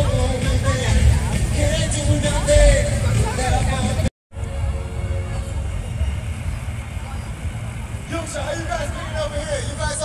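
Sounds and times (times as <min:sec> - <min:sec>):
faint crowd noise: 0:00.0 - 0:10.0.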